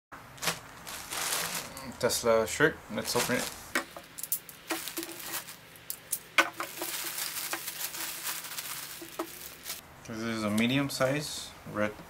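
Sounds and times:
plastic bag crinkling: 0.4s - 2.1s, 3.0s - 9.8s.

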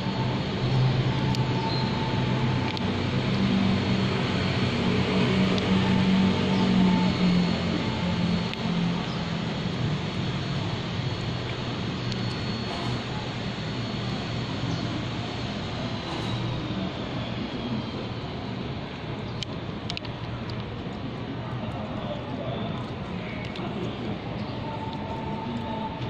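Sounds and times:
street traffic: 0.0s - 26.0s
vehicle engine humming: 0.0s - 26.0s.

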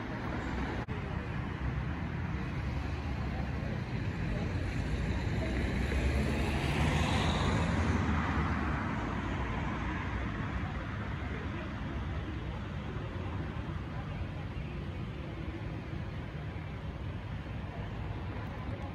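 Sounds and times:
road traffic rumble: 0.0s - 18.9s
car passing: 5.0s - 10.6s.

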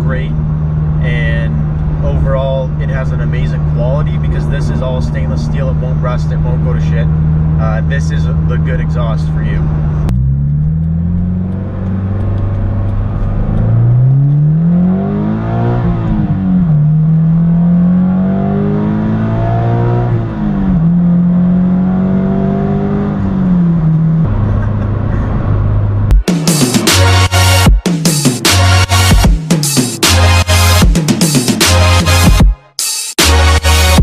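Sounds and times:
car engine accelerating: 0.0s - 32.5s
electronic music: 26.1s - 34.0s.

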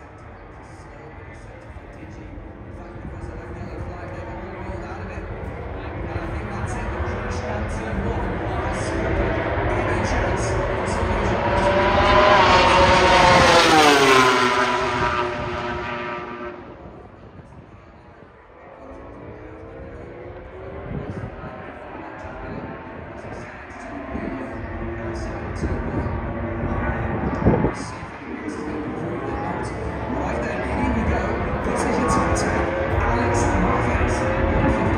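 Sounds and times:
race motorcycles passing at speed: 0.0s - 34.9s.

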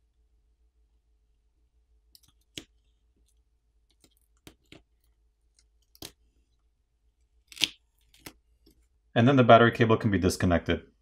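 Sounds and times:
fingers clicking and scraping phone parts: 2.2s - 6.2s, 7.4s - 8.9s.

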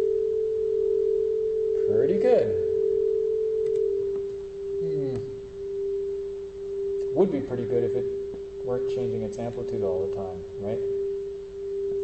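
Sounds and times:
wavering electronic sine tone: 0.0s - 12.0s.

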